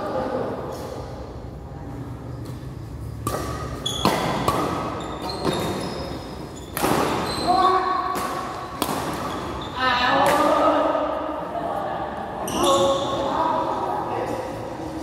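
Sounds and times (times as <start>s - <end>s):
racket striking shuttlecock: 2.5s - 7.4s, 8.0s - 9.6s, 10.2s - 10.6s
shoes squeaking on floor: 2.7s - 8.0s, 8.6s - 10.0s, 12.4s - 13.4s.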